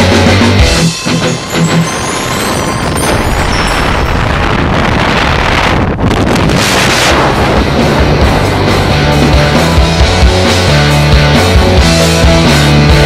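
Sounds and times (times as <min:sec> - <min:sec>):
wind rushing over microphone: 0:01.4 - 0:10.2.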